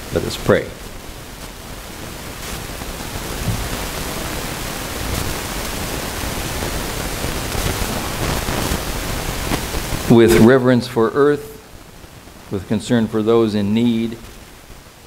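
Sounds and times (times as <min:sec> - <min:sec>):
steady background hiss: 0:00.0 - 0:15.0.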